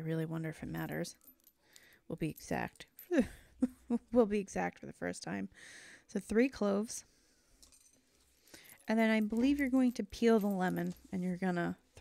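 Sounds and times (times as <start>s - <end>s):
person speaking: 8.8s - 12.0s.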